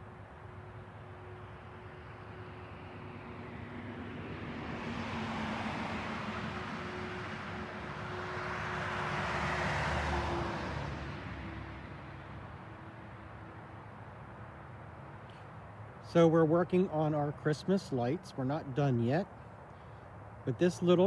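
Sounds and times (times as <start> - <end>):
vehicles passing by: 0.0 - 21.0.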